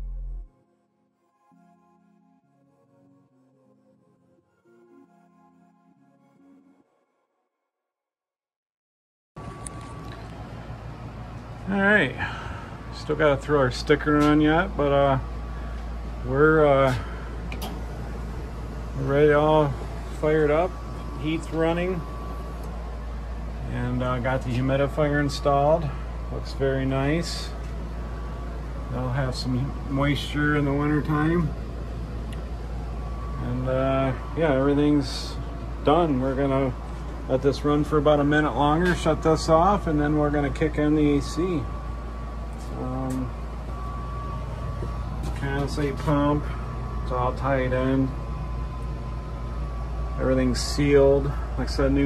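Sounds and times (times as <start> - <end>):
gas furnace humming: 9.4 - 52.0
thin high whine: 9.4 - 52.0.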